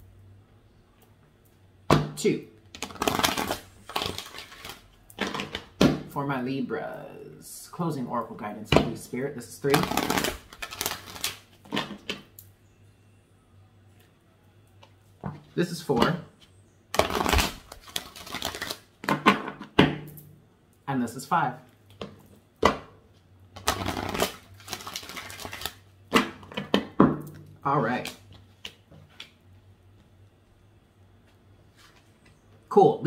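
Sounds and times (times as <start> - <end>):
cards being shuffled: 2.7 - 5.7, 9.6 - 12.2, 16.9 - 19.2, 23.6 - 26.8.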